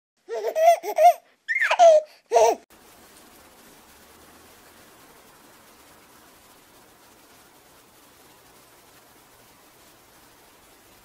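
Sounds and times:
baby laughing: 0.2s - 2.7s.

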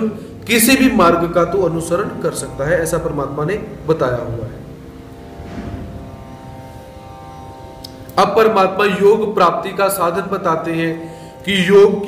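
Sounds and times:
soft sustained background music: 0.0s - 12.0s
low rumble: 4.9s - 7.6s.

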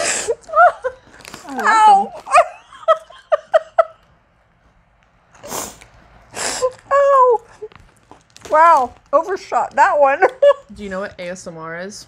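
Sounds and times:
pretzel crunching: 0.4s - 2.6s, 6.8s - 9.4s
woman giggling: 1.8s - 4.0s.

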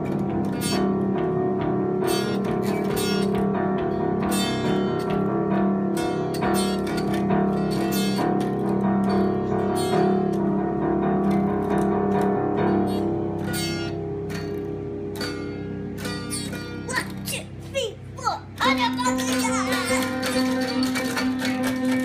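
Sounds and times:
child strumming acoustic guitar: 0.0s - 22.0s.

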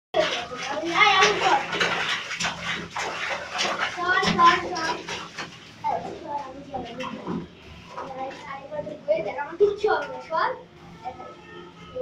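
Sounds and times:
feet splashing in bathwater: 0.2s - 10.0s.

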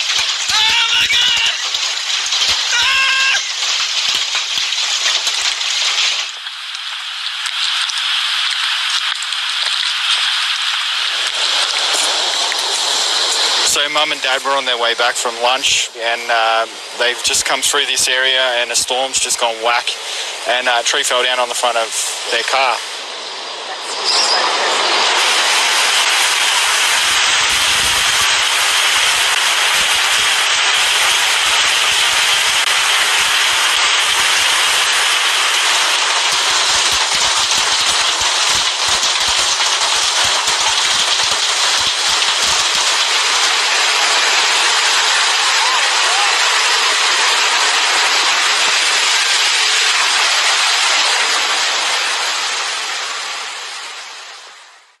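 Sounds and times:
hailstones thudding: 0.0s - 14.0s, 25.1s - 53.6s
hail and rain falling: 0.0s - 23.5s, 24.6s - 54.9s.

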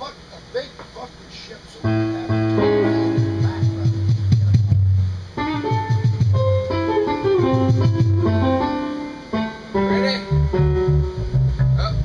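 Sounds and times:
electric guitars holding a chord: 1.8s - 12.0s
drum hits: 1.9s - 8.8s.

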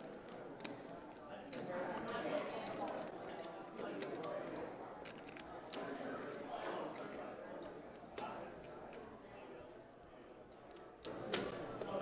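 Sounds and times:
poker chips clicking: 0.0s - 9.2s
murmur of voices: 0.0s - 12.0s.

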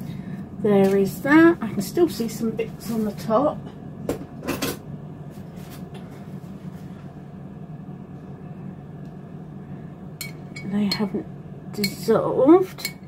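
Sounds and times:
kitchen appliance humming: 5.8s - 13.0s.

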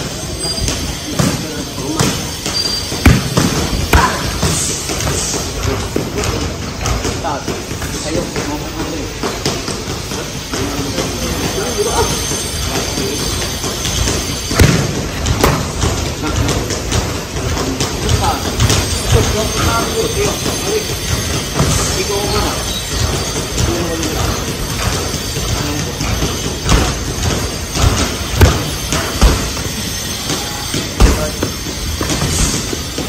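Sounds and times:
boxing gloves hitting focus mitts: 2.0s - 11.1s, 13.6s - 19.1s, 24.2s - 29.7s.

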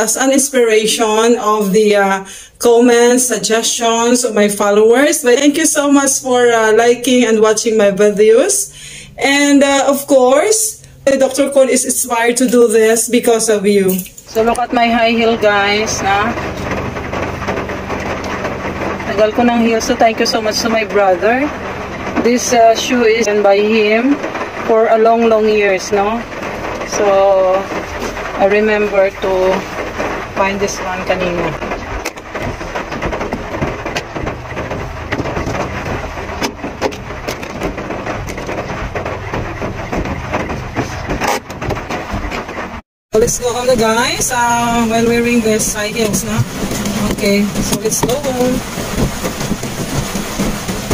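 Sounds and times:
car engine running: 0.0s - 50.9s.

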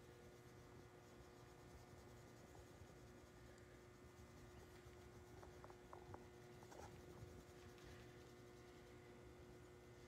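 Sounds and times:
low steady hum: 0.0s - 10.0s
marker scratching on paper: 6.6s - 7.2s.

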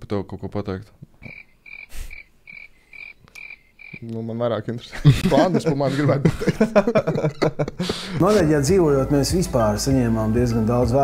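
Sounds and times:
high animal chirps: 1.2s - 4.1s.

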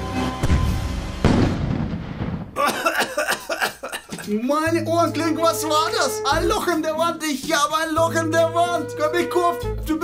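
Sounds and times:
background music: 0.0s - 1.7s, 2.6s - 10.0s
explosion: 0.4s - 2.6s
person coughing: 2.6s - 4.3s.

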